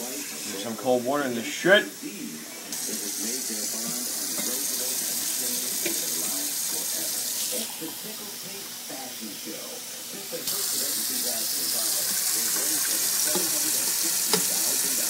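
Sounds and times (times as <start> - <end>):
faucet running into sink: 2.7 - 8.2, 10.4 - 15.0.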